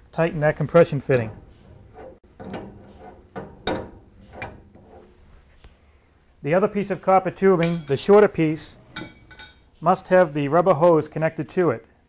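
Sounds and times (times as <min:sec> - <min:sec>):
metal clicks and knocks: 0:01.0 - 0:04.9.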